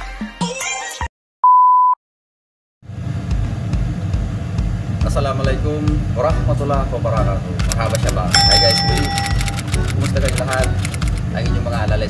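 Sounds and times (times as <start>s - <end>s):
background music: 6.0s - 12.0s
person speaking: 7.6s - 11.2s
loud steady beep: 8.4s - 9.8s.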